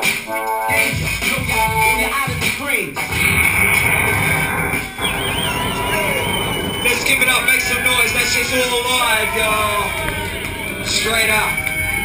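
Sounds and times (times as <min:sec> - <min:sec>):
loud hip-hop music over speakers: 0:00.0 - 0:12.0
high wavering electronic tone: 0:03.4 - 0:12.0
crowd chatter: 0:03.7 - 0:12.0.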